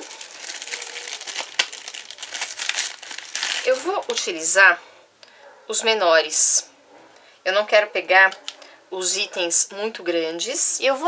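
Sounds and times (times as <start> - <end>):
plastic packaging crinkling: 0.0 - 4.3.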